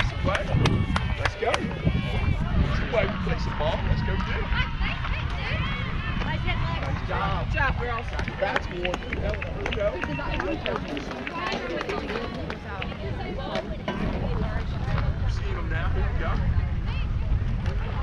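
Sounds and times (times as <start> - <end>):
steady low rumble: 0.0 - 10.4, 12.4 - 18.0
people chattering and calling: 0.0 - 18.0.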